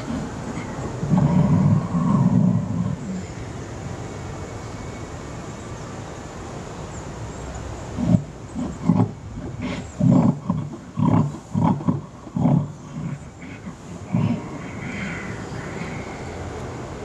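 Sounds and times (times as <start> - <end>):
steady background noise: 0.0 - 17.0.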